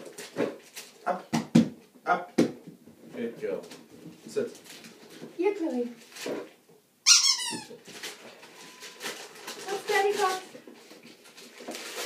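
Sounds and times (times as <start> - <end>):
rubber squeaky toy squeak: 7.0 - 7.8.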